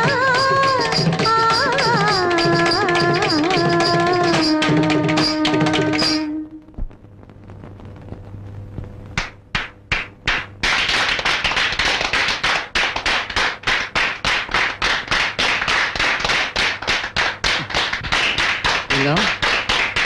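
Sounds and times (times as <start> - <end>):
single hand claps: 9.1 - 20.0
audience applause: 10.6 - 20.0.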